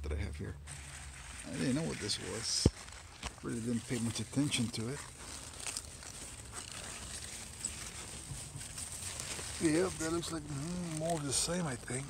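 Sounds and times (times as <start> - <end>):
rustling plants: 0.1 - 12.0
soft footsteps: 0.7 - 12.0.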